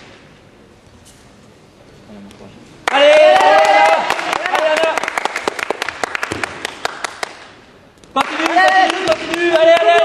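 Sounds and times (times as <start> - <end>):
small audience clapping: 2.8 - 10.0.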